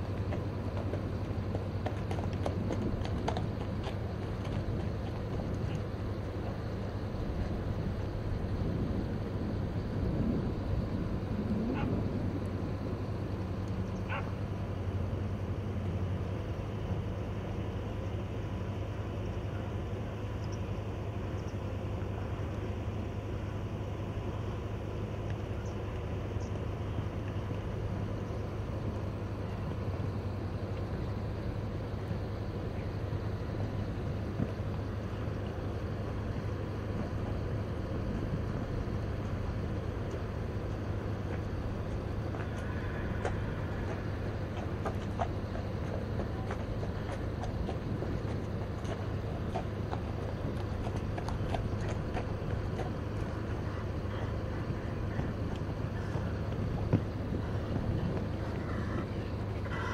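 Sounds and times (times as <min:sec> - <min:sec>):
horse hoofbeats on sand: 0:00.0 - 0:07.6, 0:33.6 - 0:59.9
low rumble: 0:00.0 - 0:14.0.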